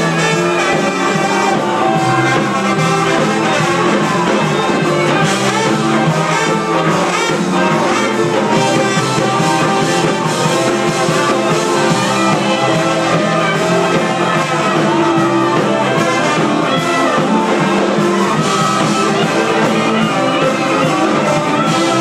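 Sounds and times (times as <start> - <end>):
horns playing lead: 0.0 - 22.0
live band playing: 0.0 - 22.0.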